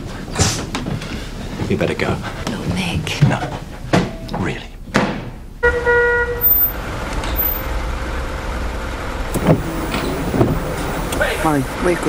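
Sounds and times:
car horn toot: 5.6 - 6.8, 9.4 - 11.0
car engine running: 6.4 - 12.0.

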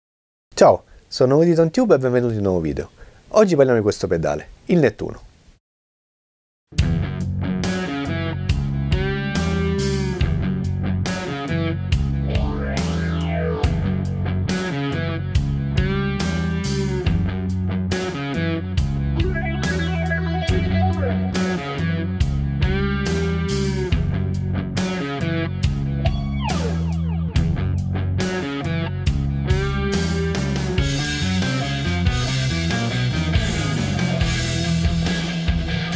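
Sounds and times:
bass guitar: 6.8 - 35.9
distorted electric guitar riff: 6.8 - 35.9
drums: 6.8 - 35.9.

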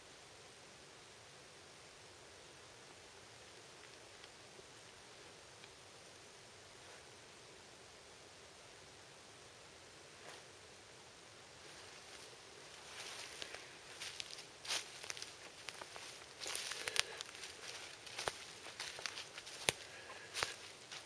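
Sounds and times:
footsteps through rustling undergrowth: 11.6 - 21.0
twigs snapping: 13.4 - 20.6.

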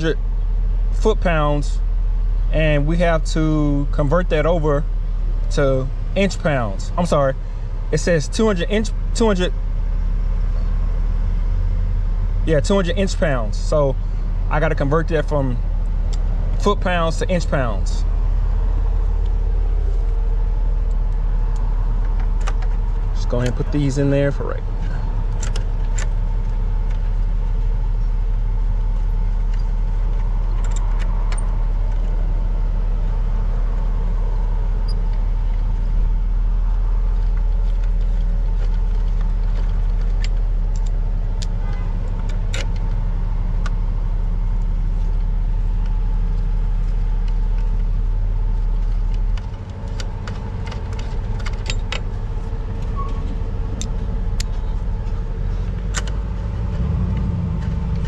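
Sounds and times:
low machine drone: 0.0 - 58.0
small metallic clicks: 28.9 - 32.2, 37.2 - 43.0, 48.6 - 52.2, 52.8 - 58.0.

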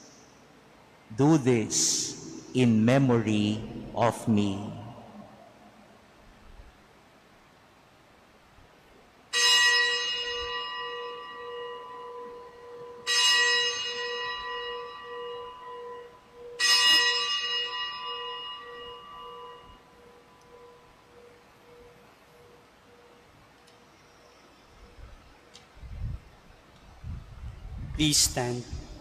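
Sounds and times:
low pulsing hum: 1.5 - 6.8
bell ringing: 9.3 - 23.3.

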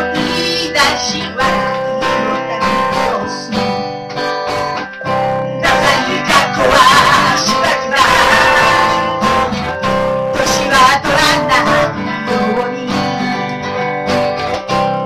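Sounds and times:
woman singing into microphone: 0.0 - 3.7, 5.6 - 9.3, 10.4 - 13.4
strummed acoustic guitar: 0.0 - 15.0.

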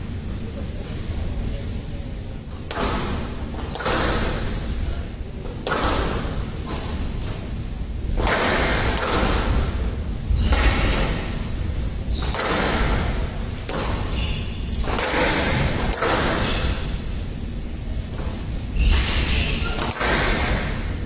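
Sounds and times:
squash ball thumps echoing: 2.5 - 21.0.

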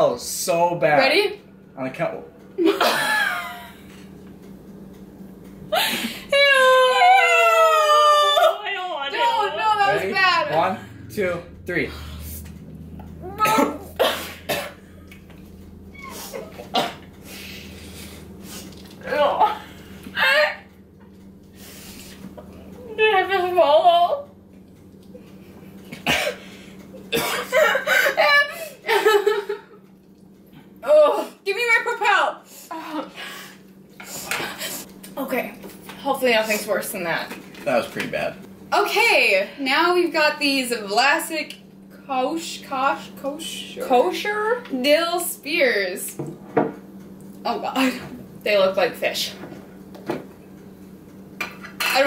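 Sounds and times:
person coughing: 13.4 - 14.9, 16.7 - 17.1, 26.0 - 28.1.

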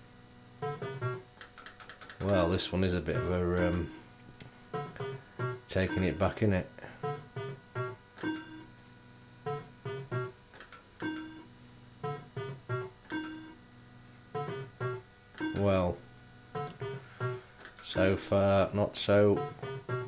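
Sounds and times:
fruit machine beeps and tunes: 0.6 - 4.1, 4.7 - 8.8, 9.4 - 13.7, 14.3 - 20.0.

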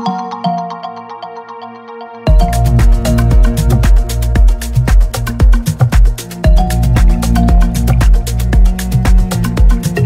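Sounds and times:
fast ticking percussion: 2.3 - 10.0
plucked synth notes: 2.3 - 10.0.

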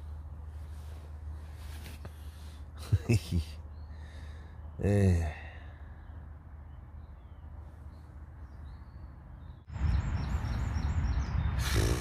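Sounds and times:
distant motorway traffic rumble: 0.0 - 12.0
bird chirping: 2.9 - 12.0.

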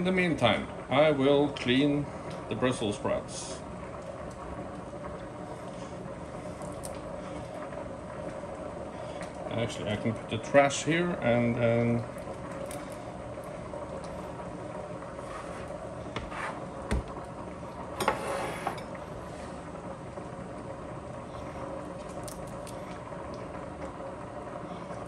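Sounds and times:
kitchen hum and hiss: 0.0 - 25.0
cutting board scraping: 15.2 - 16.7, 18.0 - 18.8.

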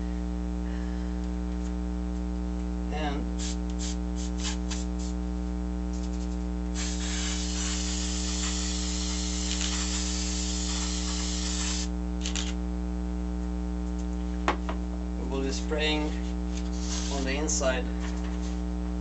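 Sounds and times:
electrical hum: 0.0 - 19.0
aerosol spray hissing: 3.4 - 5.2, 6.8 - 11.9, 16.7 - 17.3.

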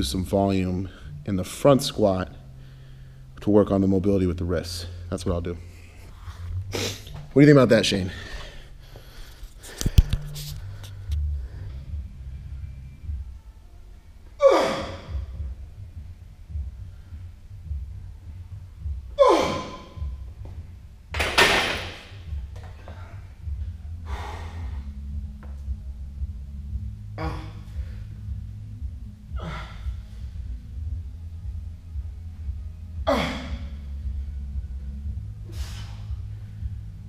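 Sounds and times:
steady low hum: 0.0 - 37.0
man breathing heavily: 2.4 - 3.4, 7.9 - 12.6, 22.6 - 25.3, 26.7 - 31.0, 33.0 - 37.0
man groaning and gasping: 19.2 - 20.1, 27.2 - 28.0, 29.3 - 30.1, 33.0 - 33.8.

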